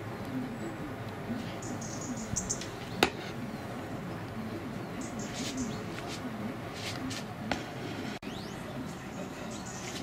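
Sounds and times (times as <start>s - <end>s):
small birds chirping: 0.0s - 7.4s, 8.2s - 10.0s
low background noise: 0.0s - 10.0s.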